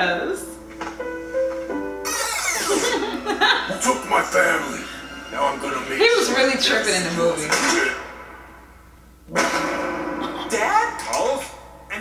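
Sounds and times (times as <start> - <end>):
dramatic hit with ringing tone: 7.5 - 10.5.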